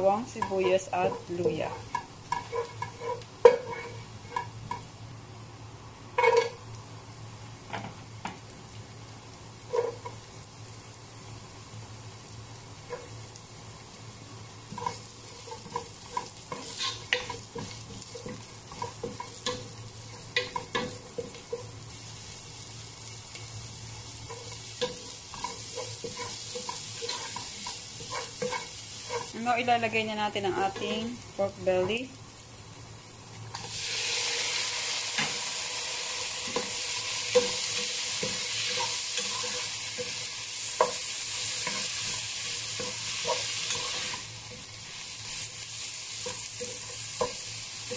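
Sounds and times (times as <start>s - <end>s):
onion sizzling in oil: 0.0s - 47.9s
wooden spoon scraping pan: 0.4s - 4.5s, 24.3s - 29.4s.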